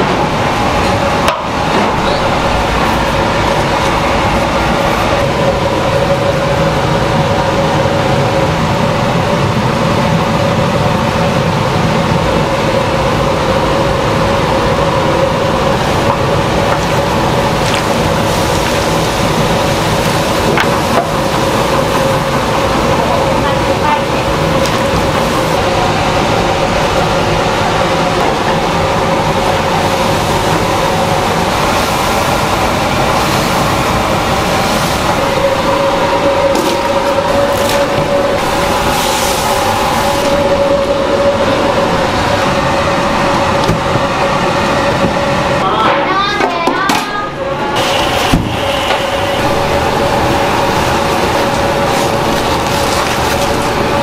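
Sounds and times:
gas cooking kettle roaring: 0.0s - 54.0s.

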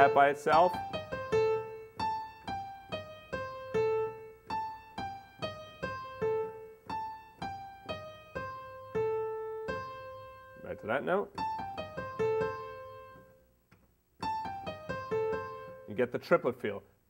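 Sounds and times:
piano jazz lick: 0.0s - 13.4s, 14.2s - 16.0s.

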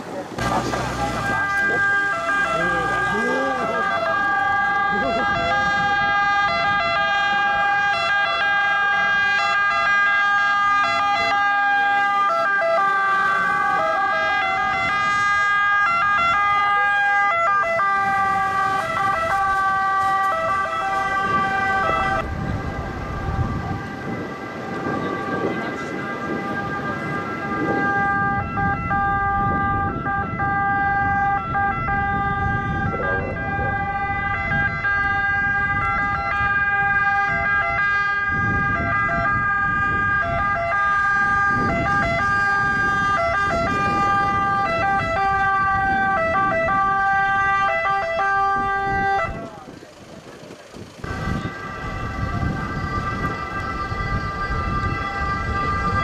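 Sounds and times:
emergency vehicle sirens: 0.0s - 56.0s
vehicle engines rumbling: 0.0s - 56.0s.

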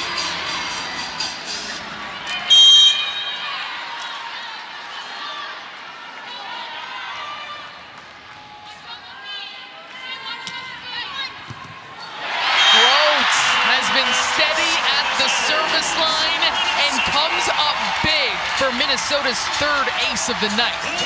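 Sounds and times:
crowd cheering and shouting: 0.0s - 7.8s, 12.0s - 21.0s
crowd murmur: 12.8s - 21.0s.

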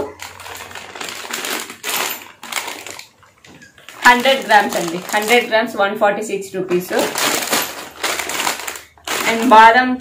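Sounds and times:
plastic packet crinkling: 0.0s - 5.8s, 6.6s - 9.9s.

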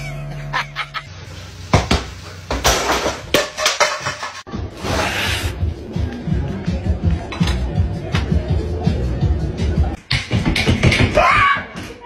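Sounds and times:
knocks and clatters of hard objects: 1.8s - 4.5s, 10.1s - 12.0s.

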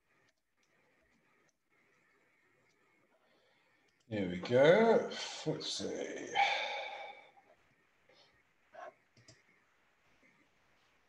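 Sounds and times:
computer mouse clicks: 8.8s - 9.6s.

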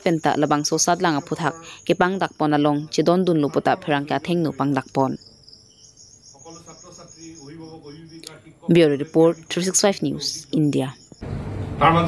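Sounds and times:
high-pitched insect trill: 0.0s - 11.2s.

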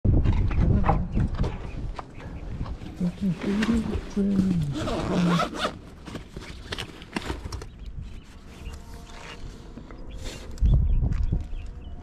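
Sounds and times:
wind buffeting microphone: 0.0s - 5.0s, 10.5s - 12.0s.

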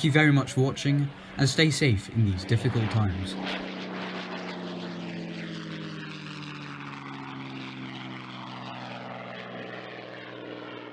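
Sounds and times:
propeller plane engine droning: 0.0s - 10.9s.

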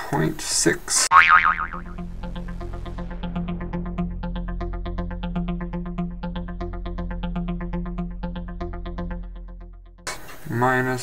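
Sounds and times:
cartoon boing sound effect: 1.1s - 3.7s
low background music: 1.4s - 10.1s.

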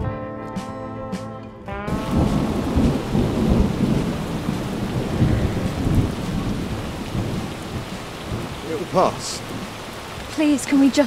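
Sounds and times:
rolling thunder: 1.9s - 10.3s
heavy rain: 1.9s - 11.0s.

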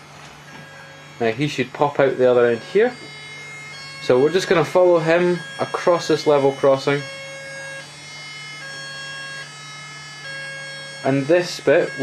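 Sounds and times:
steady low hum: 0.0s - 12.0s
electronic two-tone siren: 0.4s - 12.0s.

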